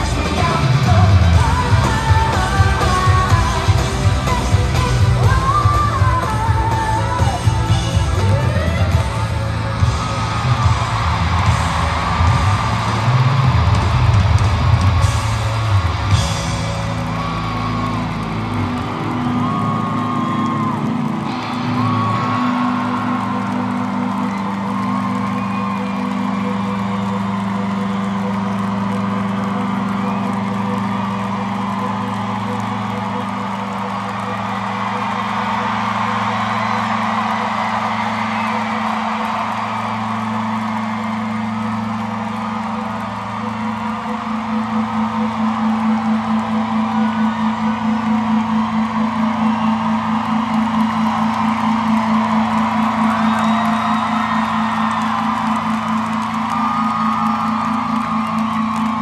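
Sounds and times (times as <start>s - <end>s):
arena crowd cheering and whooping: 0.0s - 59.0s.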